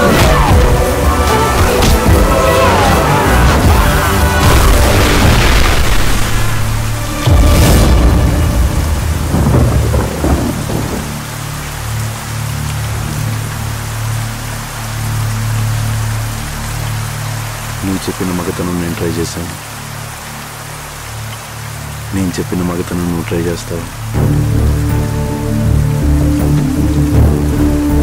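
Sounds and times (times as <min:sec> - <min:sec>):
thunder rumble: 0:00.0 - 0:11.7
heavy rain: 0:00.0 - 0:28.0.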